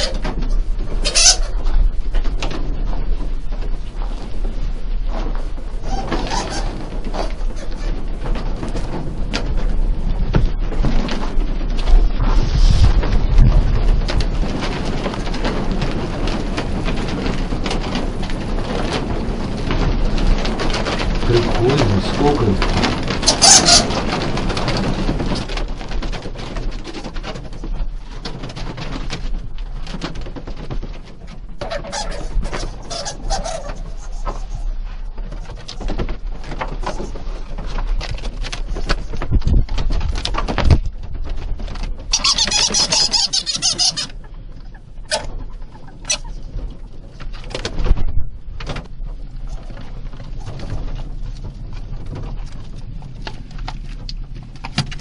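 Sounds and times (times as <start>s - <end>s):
rustling and handling noise: 0.0s - 55.0s
bats squeaking: 42.1s - 44.1s.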